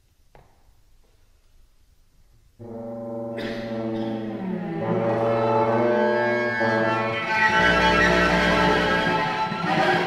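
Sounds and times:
bassoon low notes: 2.6s - 10.0s
cello low notes: 2.6s - 10.0s.

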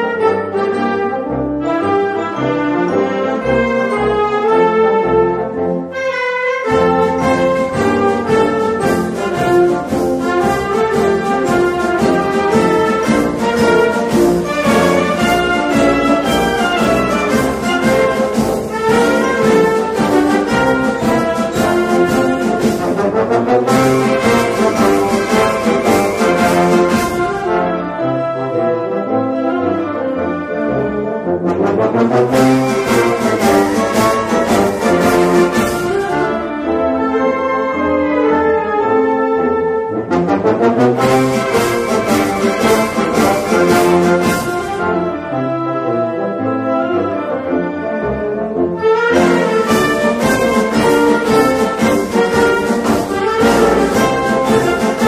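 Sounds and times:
concert band playing a march: 0.0s - 55.0s.

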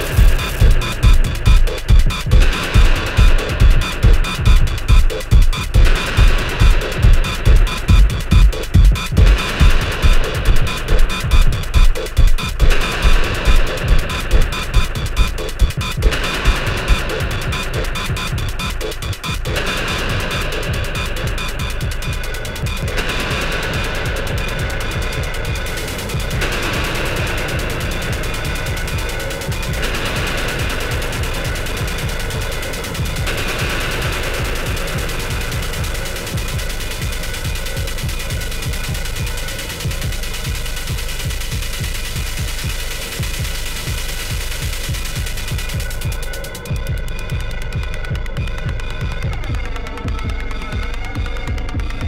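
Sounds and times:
electronic music: 0.0s - 52.0s
fast pulsing bass line: 0.0s - 52.0s.

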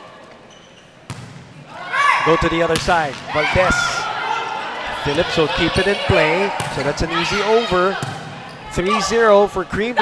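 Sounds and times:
volleyball smack: 1.1s - 1.5s, 2.7s - 4.0s, 8.0s - 8.3s.

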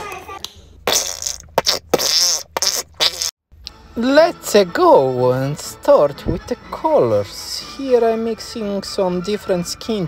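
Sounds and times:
paint tube squelching: 0.8s - 3.4s.

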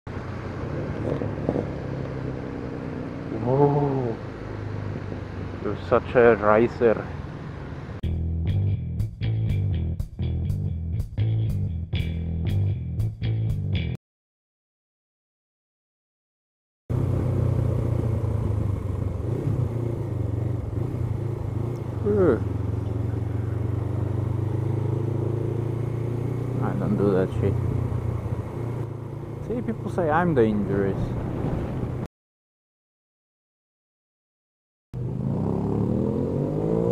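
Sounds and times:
road and wind noise: 0.1s - 10.4s, 16.9s - 32.1s, 35.0s - 36.9s
motorcycle engine running: 16.9s - 31.3s.

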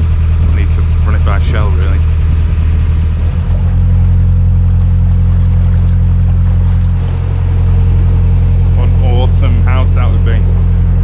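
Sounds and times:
boat engine droning: 0.0s - 11.0s.

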